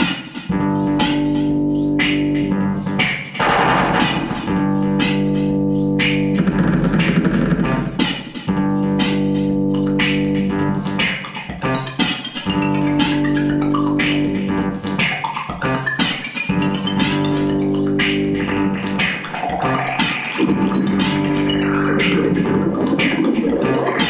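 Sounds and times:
experimental rock jam: 0.0 - 24.0.

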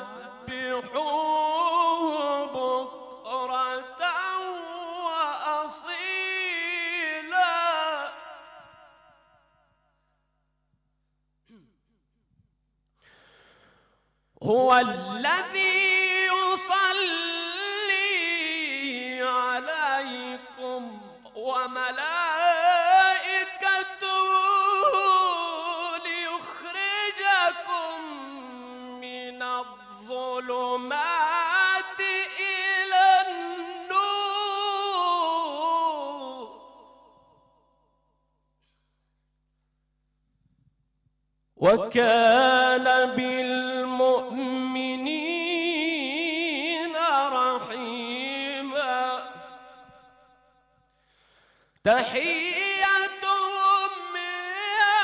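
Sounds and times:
man chanting melodically: 0.0 - 8.8, 14.4 - 37.1, 41.6 - 49.9, 51.9 - 55.0
faint breath drawn in: 13.0 - 14.3, 50.8 - 51.8.

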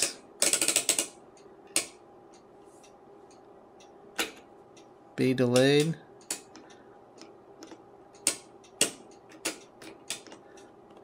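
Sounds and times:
rotary switch detent clicks: 0.0 - 11.0.

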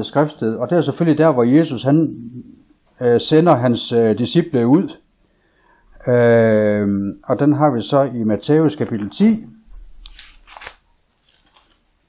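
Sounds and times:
paper pages rustling: 8.7 - 9.2, 9.8 - 11.9.

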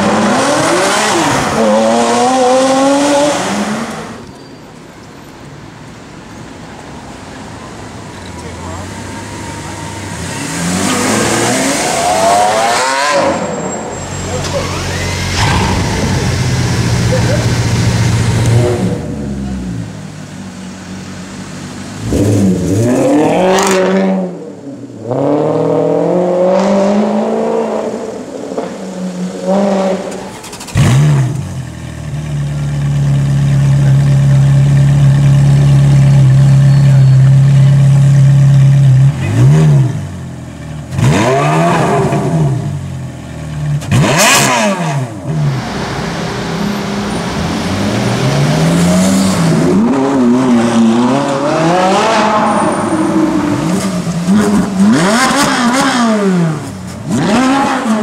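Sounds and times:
supercar engines revving: 0.0 - 4.3, 7.6 - 58.0
sharp loud crack: 14.5 - 18.9.

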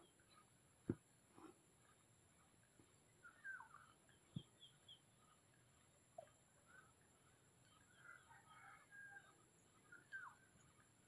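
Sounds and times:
bird chirps: 2.9 - 11.0.

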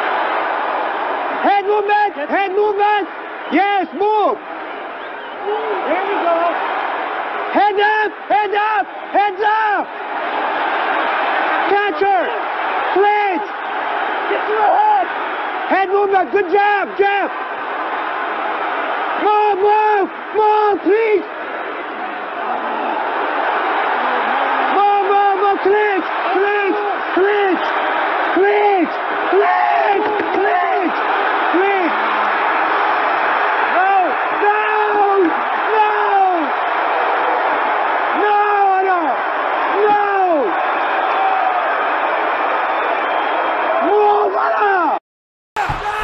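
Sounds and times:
crowd shouting: 0.0 - 45.0, 45.6 - 46.0
steady din: 45.6 - 46.0.

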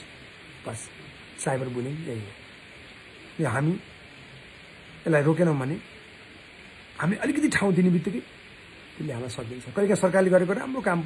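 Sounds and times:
man talking: 0.0 - 2.4, 3.4 - 3.9, 5.0 - 5.9, 7.0 - 8.3, 8.9 - 11.0
steady background hiss: 0.0 - 11.0.

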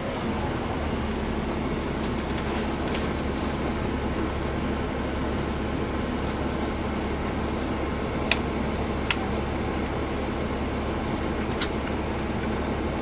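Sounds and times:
bus diesel engine idling: 0.0 - 13.0.

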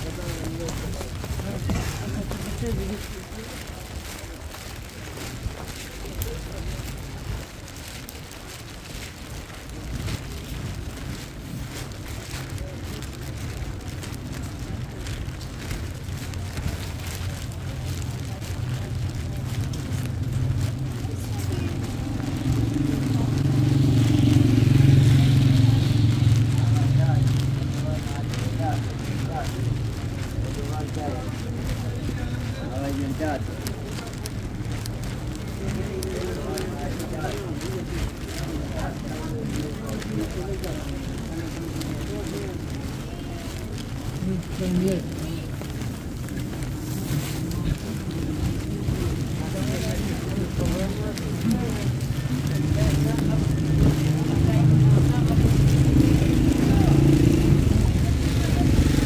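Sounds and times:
passers-by talking: 0.0 - 59.0
traffic: 0.0 - 59.0
vehicle passing close: 19.6 - 31.1, 43.8 - 59.0.

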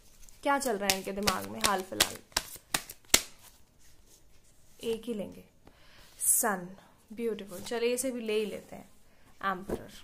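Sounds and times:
cards snapping while shuffled: 0.9 - 3.4.

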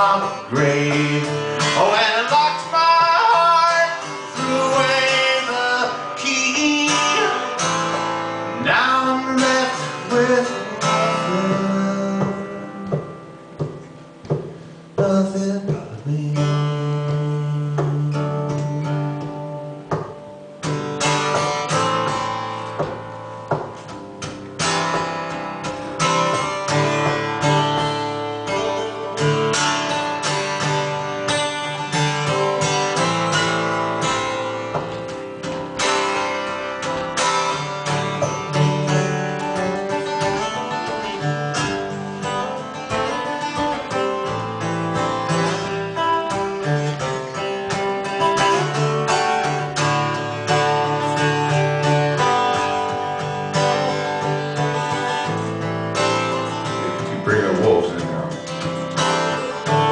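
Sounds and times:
acoustic guitar strumming chords: 0.0 - 59.9.

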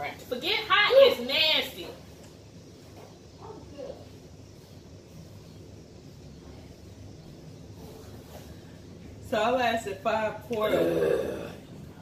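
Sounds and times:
steady low hum: 0.0 - 12.0
faint vocal murmur: 10.6 - 12.0.

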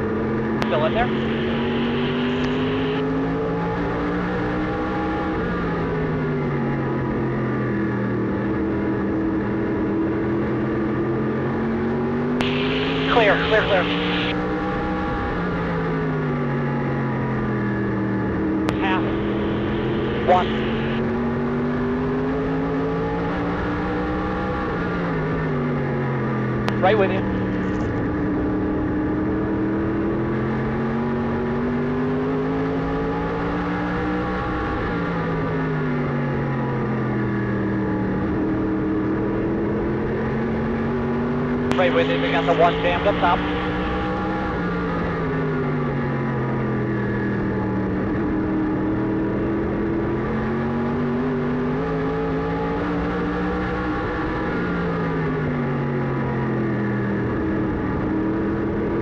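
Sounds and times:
race car engine: 0.0 - 59.0
crackly two-way radio transmissions: 0.6 - 3.1, 12.4 - 14.4, 18.7 - 21.2, 26.7 - 28.0, 41.7 - 44.9.

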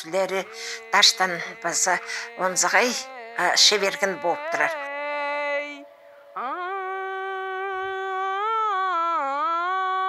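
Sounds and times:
person singing long note: 0.0 - 10.0.

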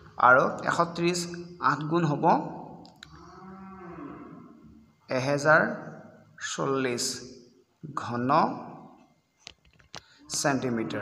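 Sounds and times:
cow mooing: 3.1 - 4.6.

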